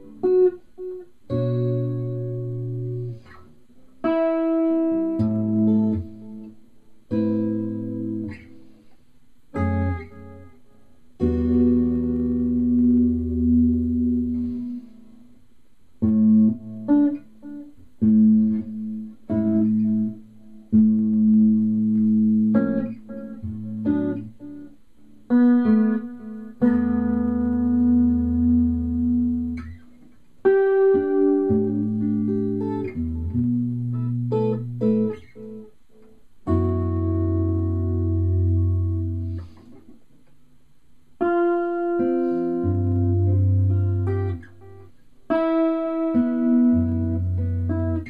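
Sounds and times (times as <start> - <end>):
electric guitar playing: 0.0 - 8.9, 9.5 - 15.4, 16.0 - 40.2, 41.2 - 48.0.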